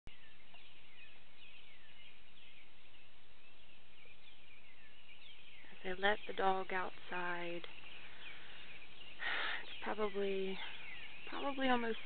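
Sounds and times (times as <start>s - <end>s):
birds whistling: 0.1s - 12.0s.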